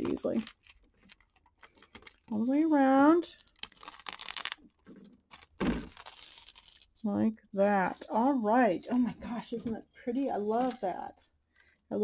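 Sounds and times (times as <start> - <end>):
plastic film crinkling and tearing: 0.1 - 7.0, 10.4 - 11.2.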